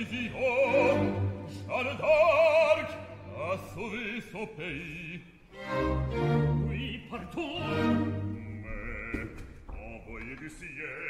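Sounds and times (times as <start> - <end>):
thin orchestral accompaniment: 0.0 - 8.8
operatic singing with vibrato: 0.0 - 11.0.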